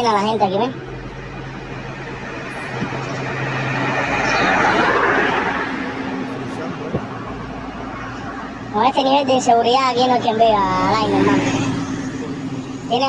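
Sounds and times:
car passing on highway: 0.0s - 13.0s.

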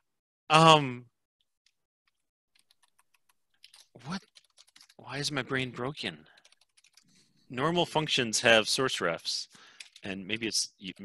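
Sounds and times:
keyboard typing: 2.1s - 5.0s, 6.3s - 7.3s.

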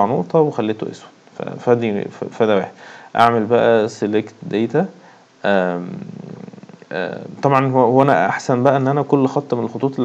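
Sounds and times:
man speaking: 0.0s - 10.0s
man's drawn-out hesitation sound: 0.0s - 10.0s.

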